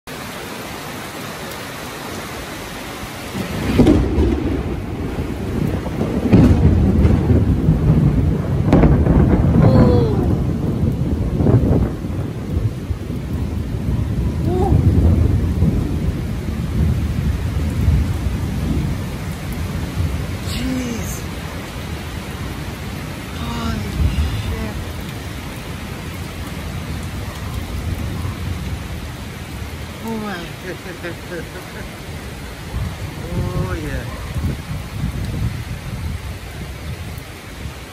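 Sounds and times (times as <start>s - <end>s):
steady rain falling: 0.0s - 37.9s
thunder rumbling: 3.3s - 37.8s.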